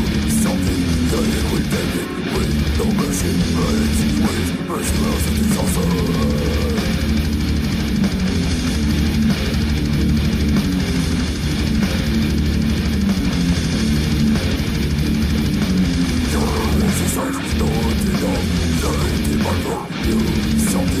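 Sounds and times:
distorted electric guitar riffing: 0.0s - 21.0s
drums: 0.0s - 21.0s.

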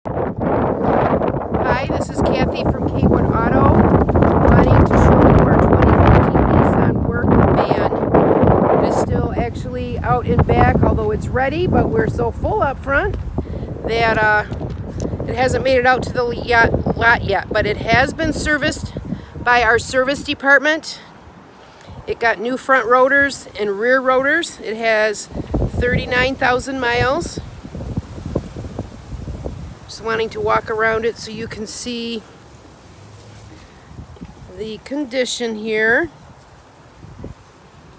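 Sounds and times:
wind buffeting microphone: 0.0s - 37.9s
person speaking: 1.6s - 8.0s, 13.8s - 14.6s, 22.1s - 27.5s, 34.4s - 36.2s.

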